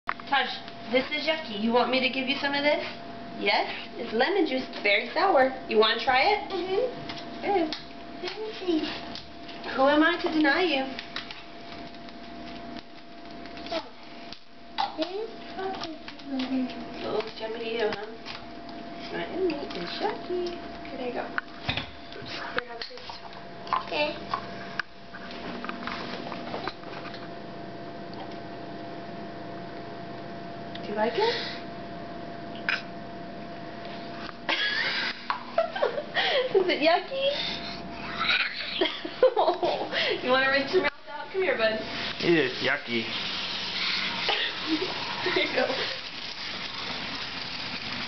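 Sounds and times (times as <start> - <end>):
faint steady hum: 0.1 - 48.0
faucet water splashing into sink: 42.9 - 48.0.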